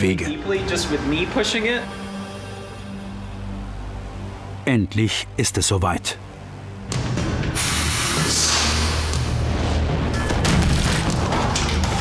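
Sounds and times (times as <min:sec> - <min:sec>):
music: 0:00.0 - 0:12.0
compressed air blast: 0:07.5 - 0:09.5.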